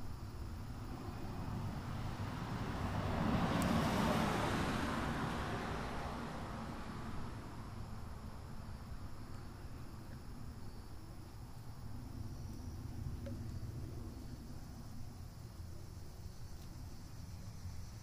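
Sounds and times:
faint insect chirping: 0.0s - 18.0s
low steady rumble: 4.9s - 18.0s.

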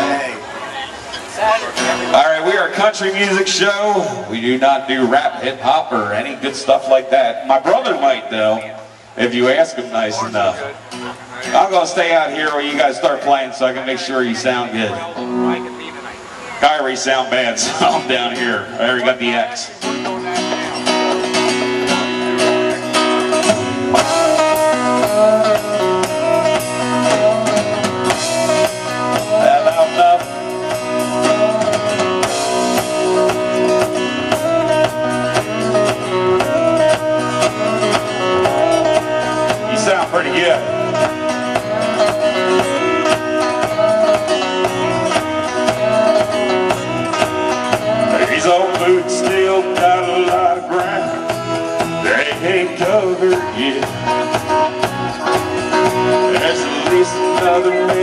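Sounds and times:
bass guitar: 0.0s - 58.0s
electric and acoustic guitars: 0.0s - 58.0s
drum kit: 19.8s - 58.0s.

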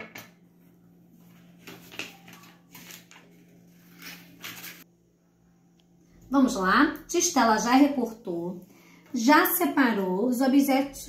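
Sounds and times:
faint steady hum: 0.0s - 11.0s
paper rustling: 1.2s - 4.8s.

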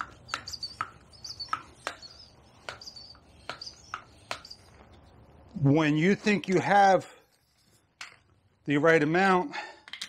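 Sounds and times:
bicycle hand pump clicking: 0.0s - 4.6s
small birds chirping: 0.0s - 5.1s.

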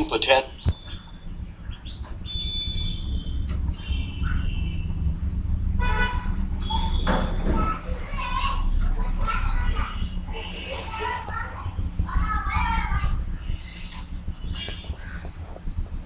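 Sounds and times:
low rumble: 0.0s - 16.0s.

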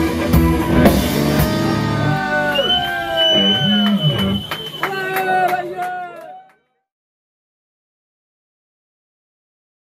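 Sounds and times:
rock band playing: 0.0s - 5.5s
audience shouting and whooping: 1.5s - 6.6s.

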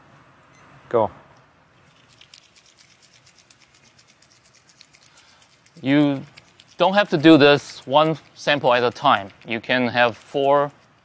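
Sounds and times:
sample tube shaken by hand: 1.8s - 11.0s.

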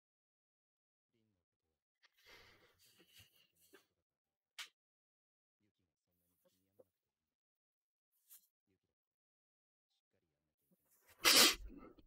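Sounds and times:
faint breath: 2.2s - 3.2s
man sneezing: 11.2s - 11.8s.

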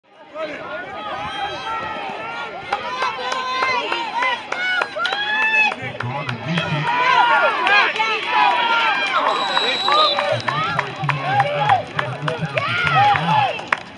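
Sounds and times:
spectators shouting and cheering: 0.1s - 13.9s.

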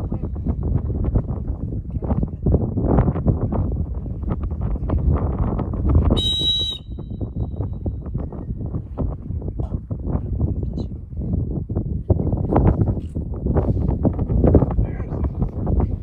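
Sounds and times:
wind buffeting microphone: 0.0s - 16.0s
dog whistle blast: 6.2s - 7.2s.

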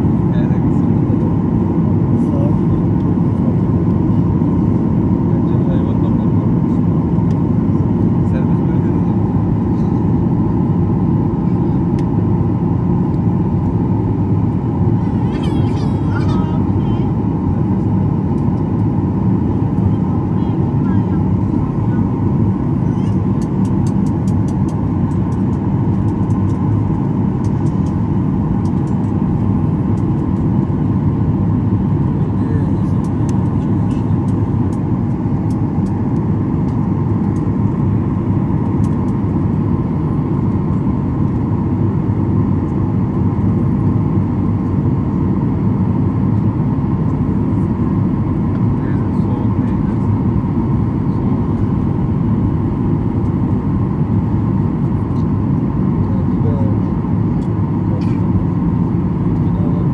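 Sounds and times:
jet engine rumble in cabin: 0.0s - 59.9s.

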